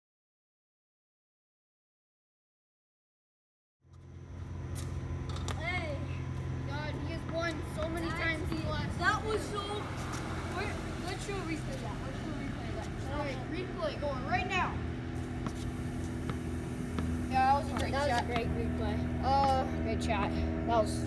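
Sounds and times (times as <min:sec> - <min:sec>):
steady low hum: 0:03.9 - 0:21.0
boys talking and calling out: 0:05.6 - 0:15.1, 0:16.4 - 0:21.0.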